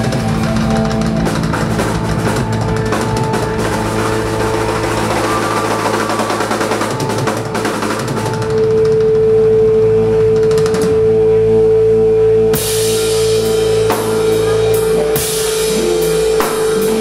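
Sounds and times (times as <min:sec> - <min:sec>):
drum kit fills and cymbals: 0:00.0 - 0:11.4, 0:12.5 - 0:17.0
held keyboard note: 0:00.0 - 0:17.0
keyboard playing: 0:00.0 - 0:17.0.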